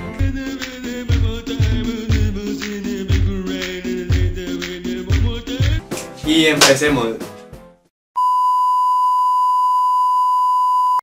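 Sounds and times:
background music: 0.0 - 7.9.

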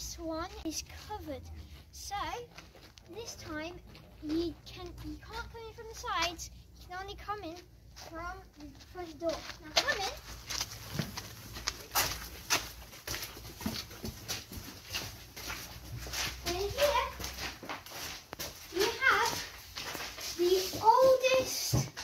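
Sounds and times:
footsteps on stone: 0.0 - 6.4, 7.0 - 22.0.

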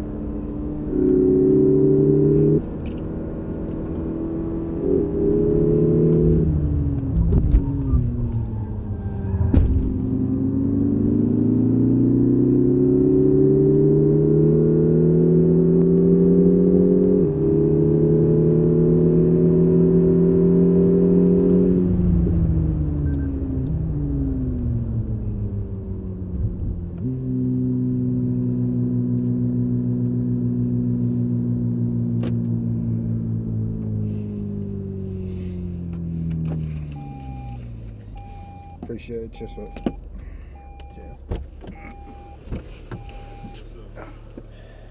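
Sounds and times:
car engine accelerating: 0.0 - 44.9.

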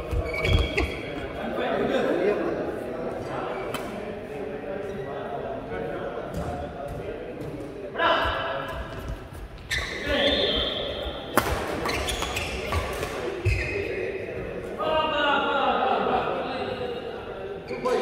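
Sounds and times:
players talking and calling: 0.0 - 18.0
racket hitting shuttlecock: 11.3 - 13.2.

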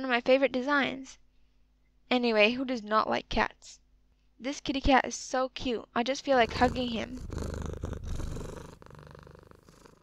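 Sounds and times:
cat purring: 6.2 - 10.0.

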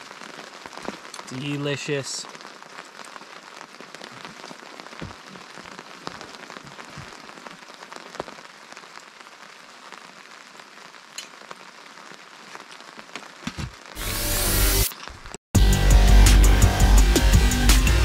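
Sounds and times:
rain falling on a tarp: 0.0 - 14.0, 14.8 - 15.4.

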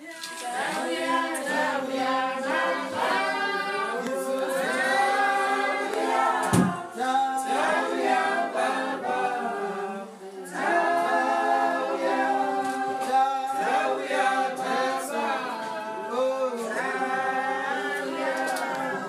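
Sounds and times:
unaccompanied choir singing: 0.0 - 19.0.

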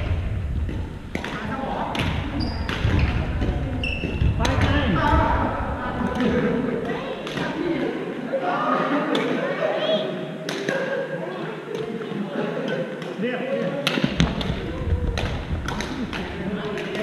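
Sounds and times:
low rumble: 0.0 - 1.2
chatter of voices in gym hall: 0.0 - 17.0
badminton rackets striking shuttlecocks: 1.1 - 4.2.

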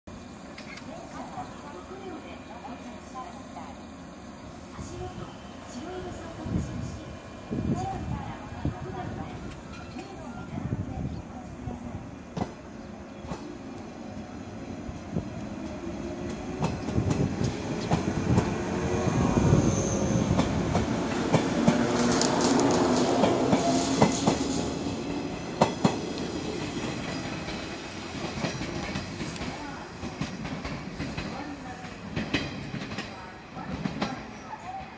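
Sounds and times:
train wheels clacking over rail joints: 25.6 - 34.3.

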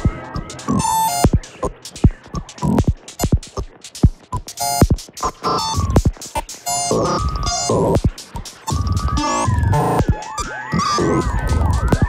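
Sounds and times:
experimental synthesizer music: 0.0 - 12.0.

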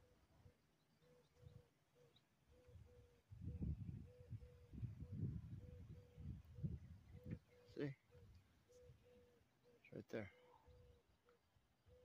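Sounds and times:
wind rumbling on microphone: 2.8 - 7.5.

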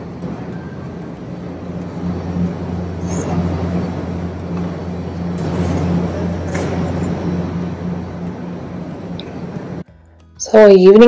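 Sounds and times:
low mechanical hum: 0.0 - 10.7.

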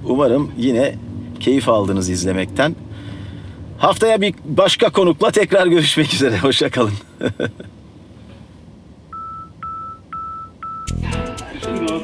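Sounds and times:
short electronic beeps: 9.1 - 11.0
music with steady beat: 10.8 - 12.0.

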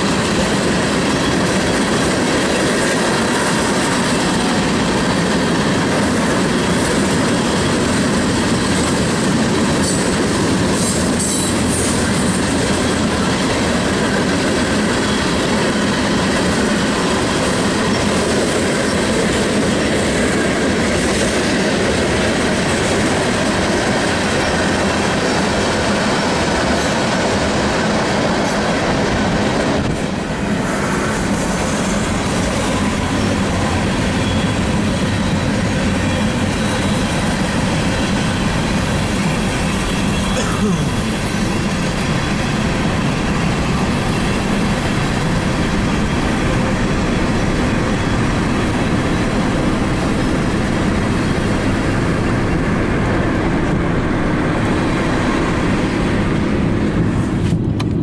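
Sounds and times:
train wheels rolling on rails: 0.0 - 58.0.

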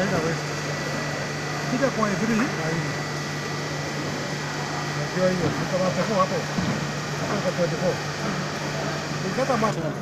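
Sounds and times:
printing machine humming and whining: 0.0 - 10.0.

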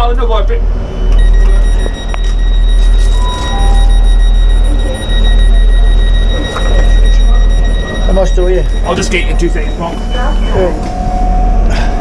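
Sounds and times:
train engine rumbling: 0.0 - 12.0
high electronic warning tone: 0.8 - 12.0.

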